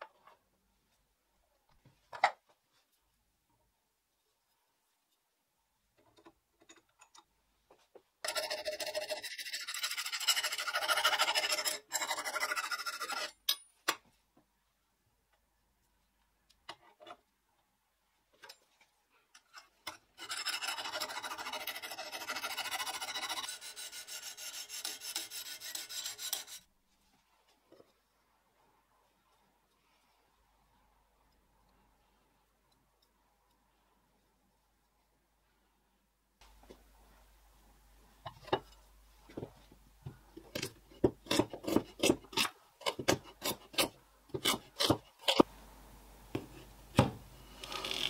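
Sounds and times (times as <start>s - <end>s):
sharpening stone scraping blade: 8.3s - 13.4s, 20.2s - 26.7s.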